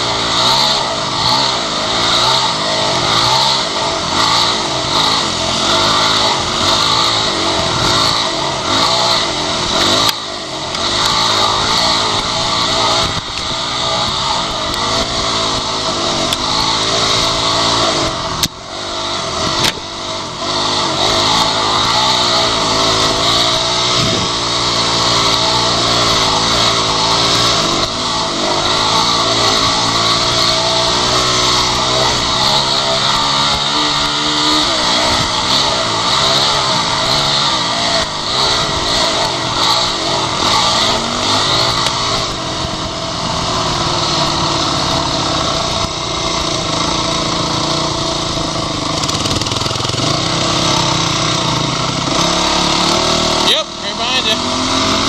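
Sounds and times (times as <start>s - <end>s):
dirt bike engine revving: 0.0s - 55.0s
wind noise: 23.9s - 24.4s.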